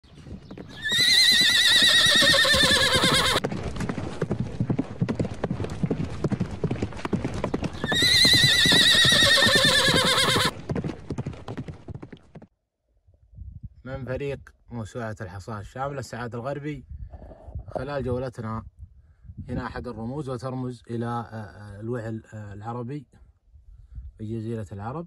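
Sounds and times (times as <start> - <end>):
horse hooves clip-clopping: 0.0 - 12.5
horse whinnying: 0.7 - 3.4, 7.8 - 10.5.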